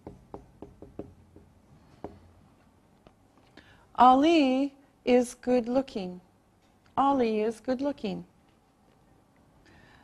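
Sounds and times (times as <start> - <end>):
marker tapping on whiteboard: 0.0 - 2.3.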